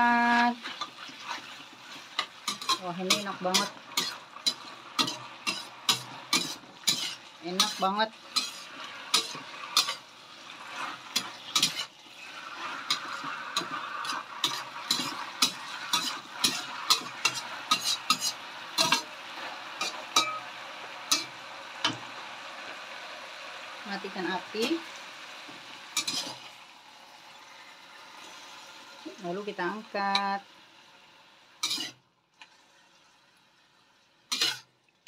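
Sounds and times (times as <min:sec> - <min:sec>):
food sizzling: 0:00.0 - 0:35.0
metal spatula scraping a wok: 0:00.3 - 0:22.0, 0:26.0 - 0:26.5, 0:31.6 - 0:32.0, 0:34.3 - 0:34.7.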